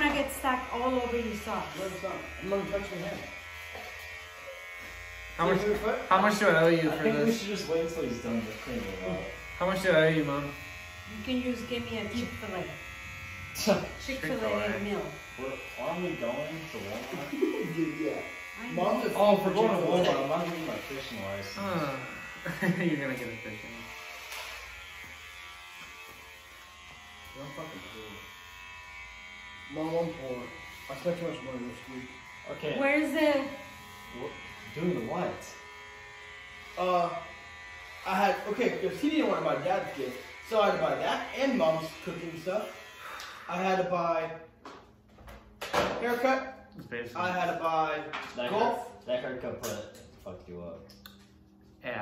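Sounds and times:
electric hair clippers buzzing: 0.0 - 51.6.

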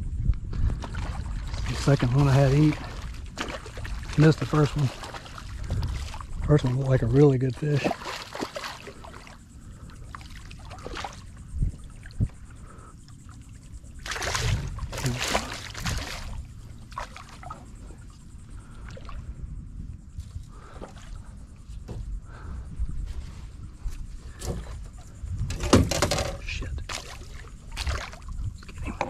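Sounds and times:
low rumble: 0.0 - 7.6, 9.4 - 25.7
water splashing against boat hull: 0.6 - 12.4, 13.8 - 19.2, 24.3 - 29.0.

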